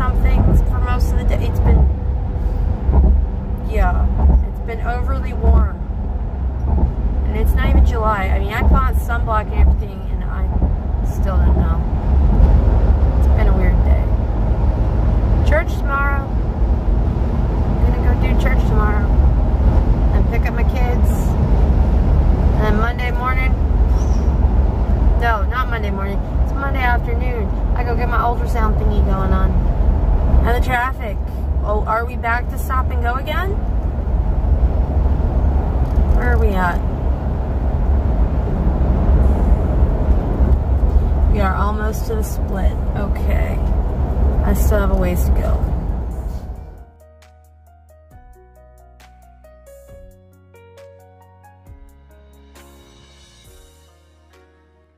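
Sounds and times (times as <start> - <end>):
woman talking: 0.0 - 1.9, 3.6 - 5.8, 7.3 - 11.9, 13.2 - 14.2, 15.4 - 16.3, 17.8 - 19.2, 20.1 - 21.4, 22.6 - 23.6, 25.2 - 29.6, 30.4 - 33.6, 36.1 - 36.9, 41.3 - 43.8, 44.4 - 45.8
car cabin road and engine rumble: 0.0 - 47.0.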